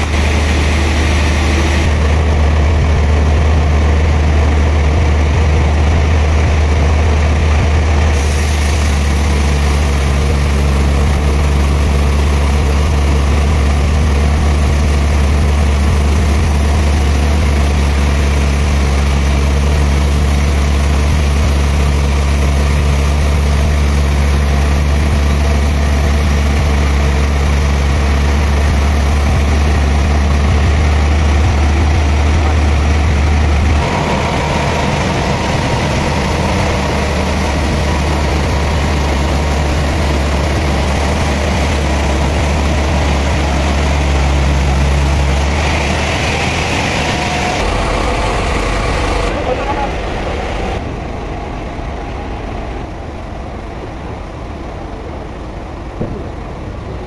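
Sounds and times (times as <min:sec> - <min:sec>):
sawmill machinery droning: 0:00.0 - 0:57.0.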